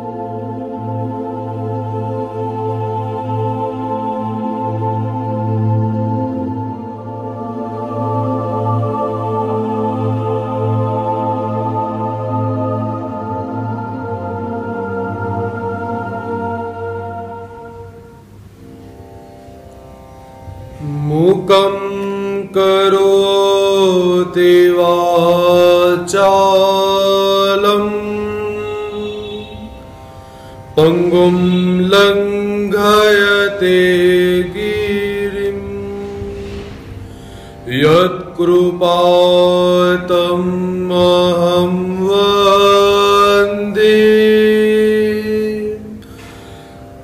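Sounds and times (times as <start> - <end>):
soft sustained musical tones: 0.0 - 47.0
man chanting: 20.8 - 29.8, 30.7 - 37.0, 37.6 - 46.0.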